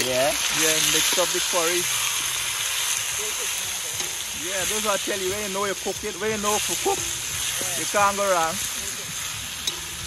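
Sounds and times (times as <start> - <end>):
curry sizzling in a pot: 0.0 - 10.0.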